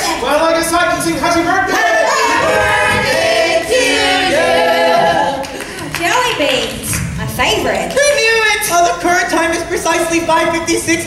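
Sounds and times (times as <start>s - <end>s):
people singing in harmony: 1.0s - 5.6s.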